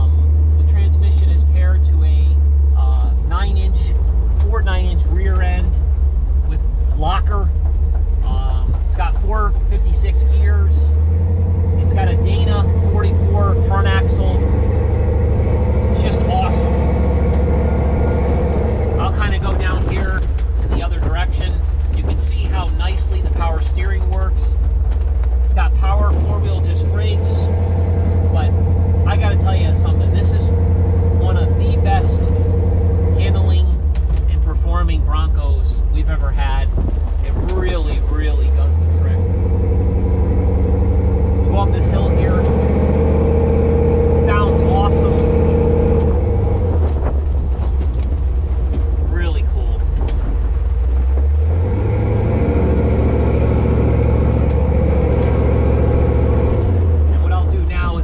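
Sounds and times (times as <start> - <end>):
engine drone while driving: 0.0 - 58.0.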